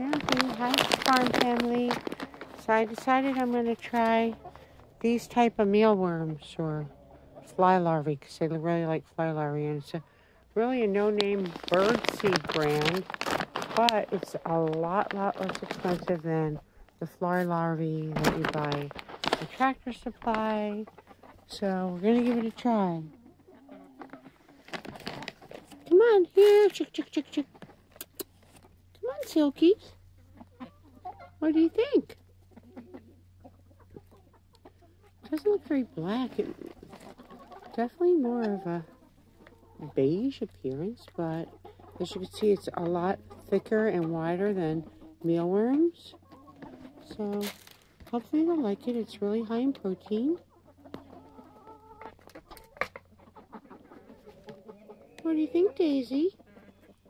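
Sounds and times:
plastic pouch crinkling: 0.0 - 2.7, 11.1 - 16.0, 18.2 - 19.6, 24.6 - 25.7
scattered larvae crackling: 0.0 - 4.5, 10.7 - 16.2
hens clucking: 0.0 - 57.0.

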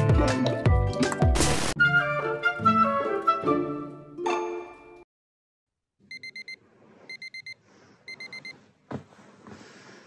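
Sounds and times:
alarm clock beeping: 6.1 - 8.6.

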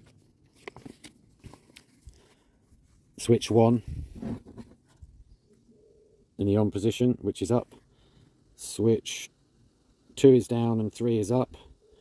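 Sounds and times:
paper pages rustling: 0.0 - 3.0.

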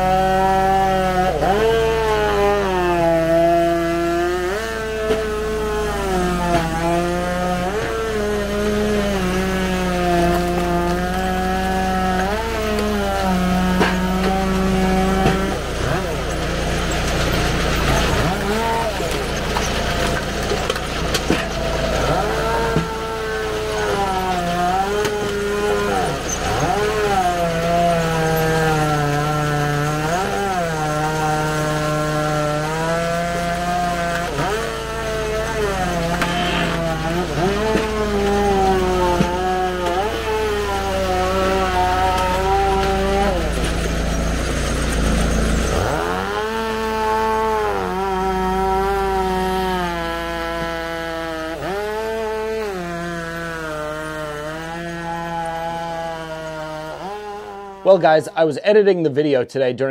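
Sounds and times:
log splitter engine loading down: 0.1 - 57.0.

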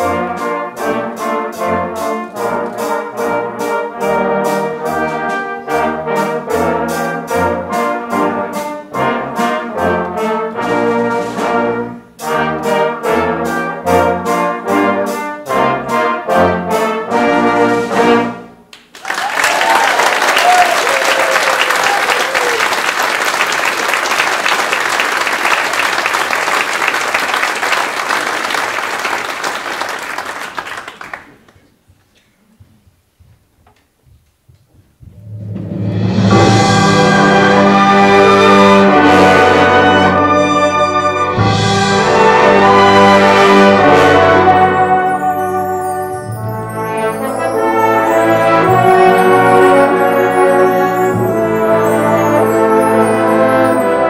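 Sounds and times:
brass band with drum kit: 0.0 - 18.7, 34.8 - 54.0
audience applause: 18.7 - 31.7
audience cheer: 19.0 - 29.2.

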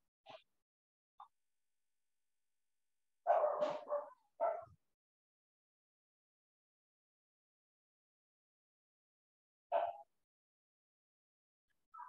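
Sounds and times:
dog barking: 3.2 - 4.8, 9.7 - 10.1.

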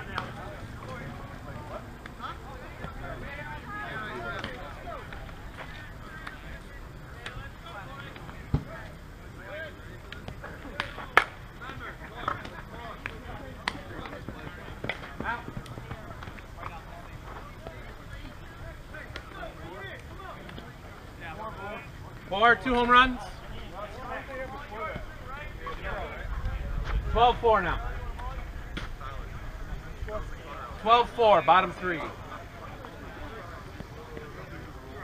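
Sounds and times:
wind rumble on microphone: 25.9 - 30.5.

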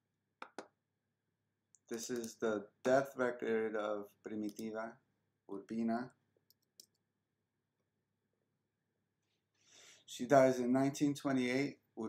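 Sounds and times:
computer mouse clicks: 2.0 - 2.4, 4.4 - 4.7, 6.5 - 7.0.

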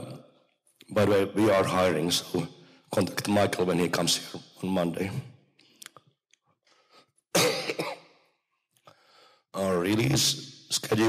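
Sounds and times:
man coughing into microphone: 7.3 - 8.2.

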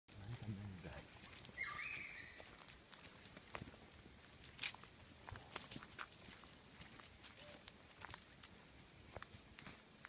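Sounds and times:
child shouting high-pitched: 1.6 - 2.4.

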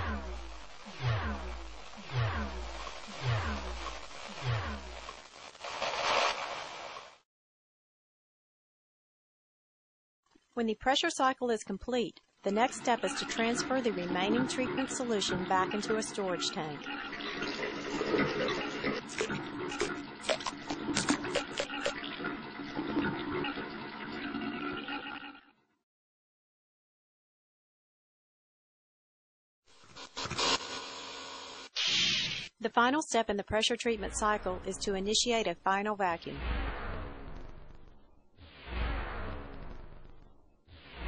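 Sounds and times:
electronic music with falling bass: 0.0 - 5.6
burst of hiss: 5.3 - 7.2, 29.9 - 32.5
water draining: 12.6 - 25.4.

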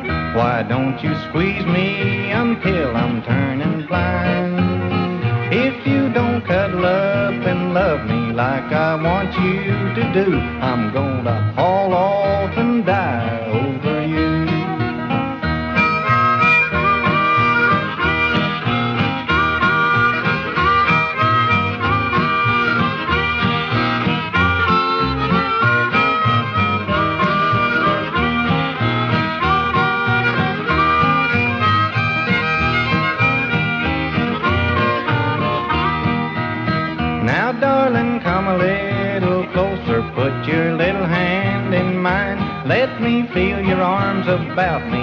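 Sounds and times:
country band guitar backing: 0.0 - 45.0
harmonica solo: 0.0 - 45.0
person singing: 0.2 - 14.9, 37.2 - 45.0.

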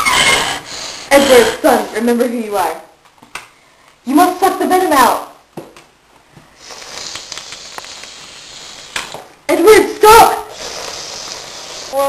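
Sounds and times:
mouth sucking sound: 6.5 - 9.3, 10.4 - 12.0.

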